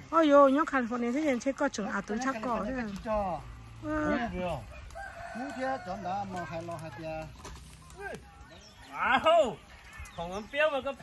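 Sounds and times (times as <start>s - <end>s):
people talking: 0.1s - 4.7s
rooster crowing: 4.5s - 6.6s.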